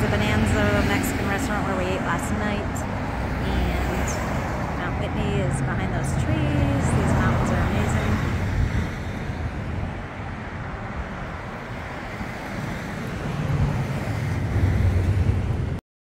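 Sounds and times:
street traffic noise: 0.0s - 15.8s
vehicle passing: 0.0s - 15.8s.

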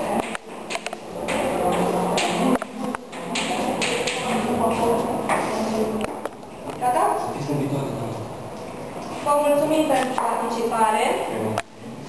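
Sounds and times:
indistinct talking: 0.0s - 11.6s.

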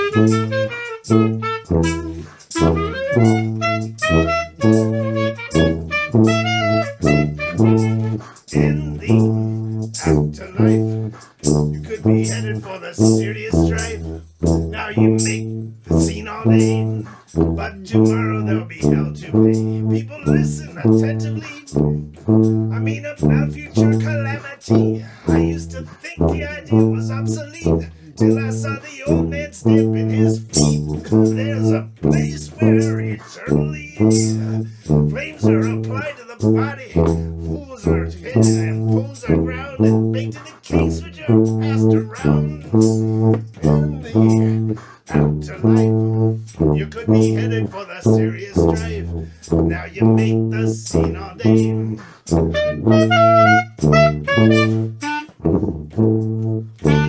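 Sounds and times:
horn melody: 0.0s - 57.0s
low brass bass line: 0.0s - 57.0s.

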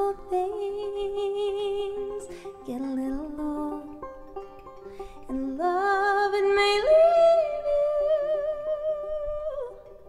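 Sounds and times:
soft banjo accompaniment: 0.0s - 10.0s.

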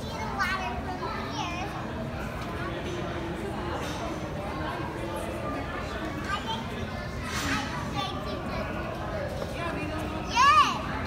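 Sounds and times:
visitors' voices and children's chatter: 0.0s - 11.0s.

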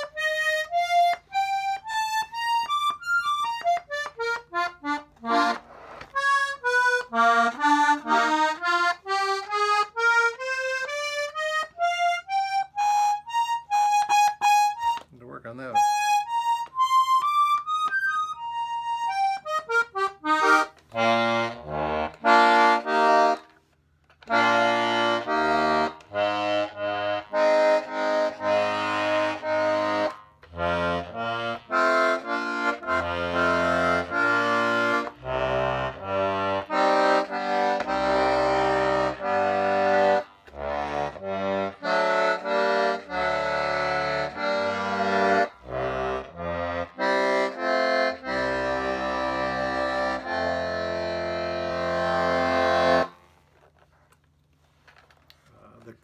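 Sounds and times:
button accordion playing a tune: 0.0s - 53.9s.

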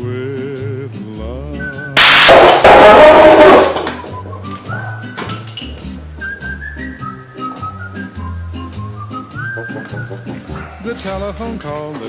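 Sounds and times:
whistled country song: 0.0s - 2.3s, 4.0s - 12.0s
cartridge bang: 2.0s - 4.1s.

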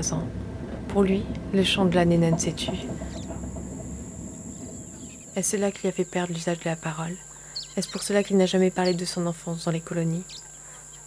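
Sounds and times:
low rumble: 0.0s - 6.4s
crickets trilling: 0.0s - 11.0s.

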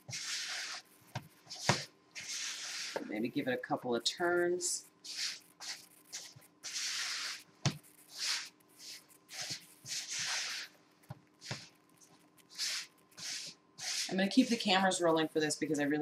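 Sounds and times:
spatula scraping dough in bowl: 0.0s - 3.5s, 4.2s - 10.7s, 11.4s - 14.7s.

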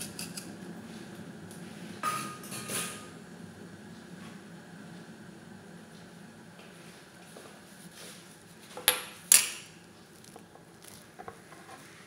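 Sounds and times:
low kitchen hum: 0.0s - 12.0s.

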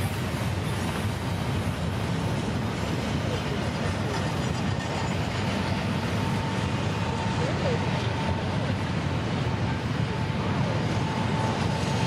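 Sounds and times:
freight train rumble: 0.0s - 12.0s.

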